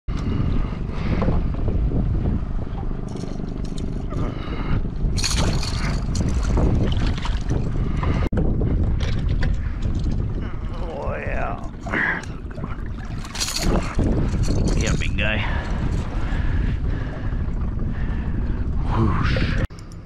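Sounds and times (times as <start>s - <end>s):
wind buffeting microphone: 0.1s - 19.8s
boat motor running: 0.1s - 20.0s.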